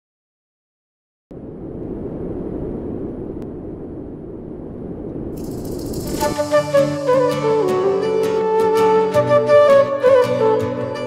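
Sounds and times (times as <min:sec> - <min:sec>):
low grainy crackly rumbling: 0:01.3 - 0:06.6.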